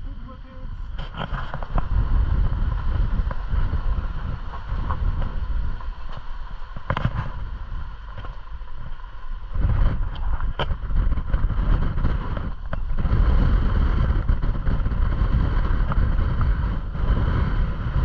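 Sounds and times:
vehicle engine and tyres rumbling: 0.0 - 18.0
wind on microphone: 0.0 - 18.0.

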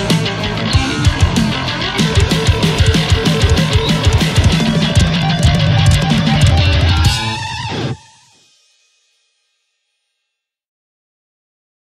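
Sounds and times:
heavy metal band playing: 0.0 - 8.4
held guitar chord ringing: 0.2 - 8.4.

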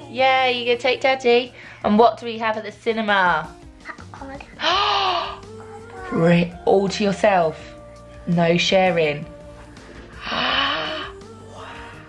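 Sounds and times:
soft background music: 0.0 - 12.0
breathy vocal sound: 4.5 - 6.6, 9.3 - 12.0.

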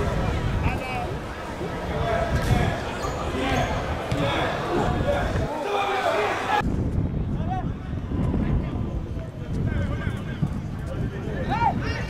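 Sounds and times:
players shouting: 1.8 - 6.6.

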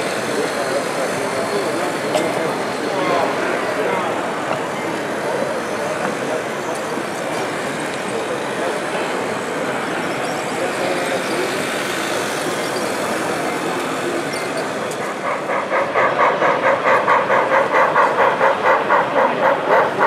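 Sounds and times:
exhibition hall background noise: 0.0 - 20.0.

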